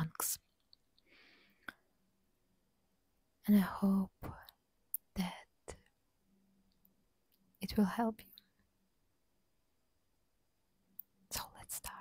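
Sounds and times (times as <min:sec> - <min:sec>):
close-miked whispering: 0:11.3 - 0:12.0.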